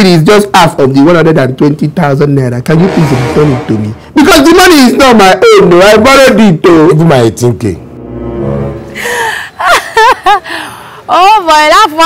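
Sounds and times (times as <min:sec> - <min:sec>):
woman gasping: 0:09.0 - 0:09.6, 0:10.4 - 0:11.1
woman laughing: 0:09.0 - 0:10.6.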